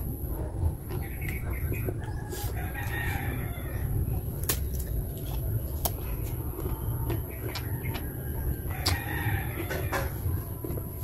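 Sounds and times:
rooster crowing: 2.2 - 3.8, 8.3 - 10.2.

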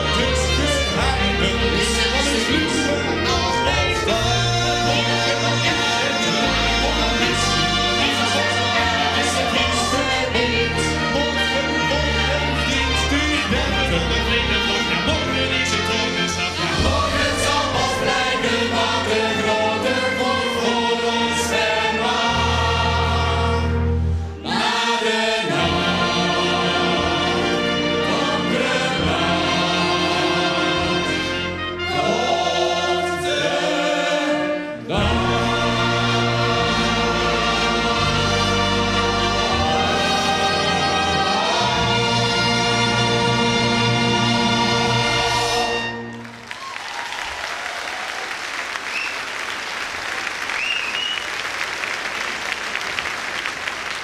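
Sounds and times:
choir singing: 0.0 - 46.2
brass band playing: 0.0 - 47.8.

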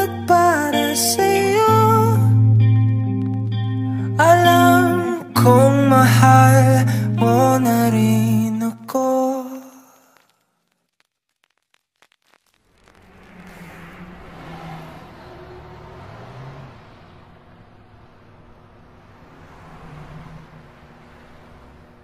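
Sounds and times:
low wavering hum: 0.0 - 8.2
steady rushing noise: 12.6 - 16.0.

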